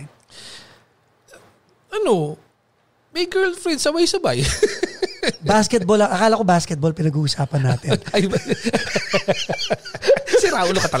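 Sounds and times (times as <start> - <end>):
faint breath: 0.3 - 0.9
man's voice: 7.5 - 9.3, 10.2 - 11.0.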